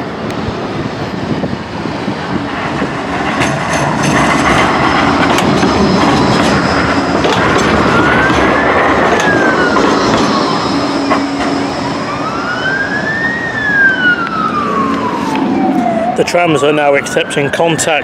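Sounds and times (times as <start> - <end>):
emergency siren wailing: 0.0 - 18.0
tram rolling past: 0.0 - 18.0.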